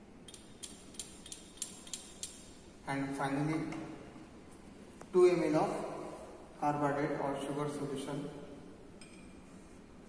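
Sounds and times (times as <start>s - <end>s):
glass tapping on glass rim: 9.0s - 9.4s.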